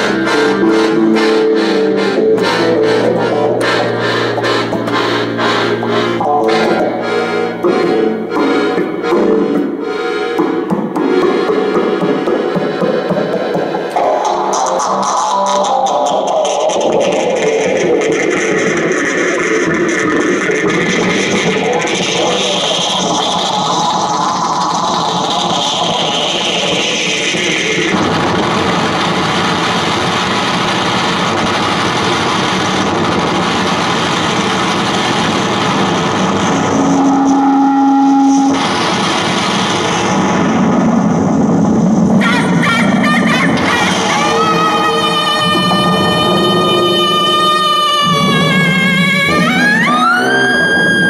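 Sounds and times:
held tone: 0.0s - 14.0s, 36.6s - 38.7s
distorted electric guitar noise: 0.0s - 51.0s.

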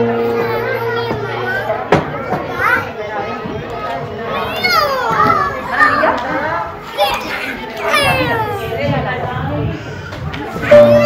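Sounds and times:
adult voices: 0.0s - 11.0s
children chattering and calling out: 0.0s - 11.0s.

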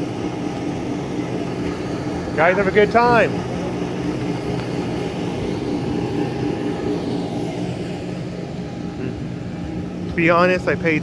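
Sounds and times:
mechanical drone: 0.0s - 11.0s.

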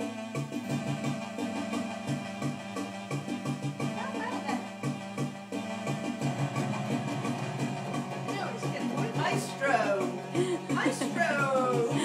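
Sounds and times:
electronic organ droning notes: 0.0s - 12.0s.

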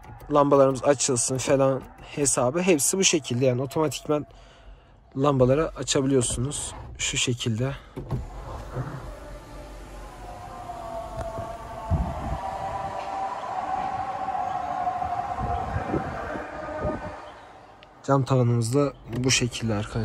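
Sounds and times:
sunroof motor whine: 8.2s - 17.7s.

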